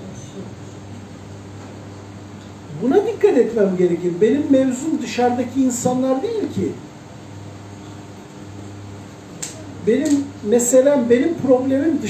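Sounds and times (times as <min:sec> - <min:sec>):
steady low hum: 0:00.0 - 0:12.0
man speaking: 0:02.7 - 0:06.8, 0:09.8 - 0:12.0.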